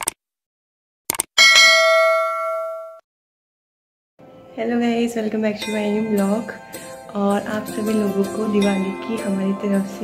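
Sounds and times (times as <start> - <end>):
notification bell ding: 1.4 - 3.0.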